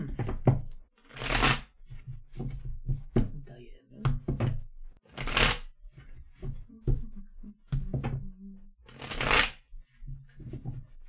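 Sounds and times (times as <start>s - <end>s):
cards being shuffled: 1.0s - 1.7s, 5.1s - 5.7s, 8.8s - 9.6s.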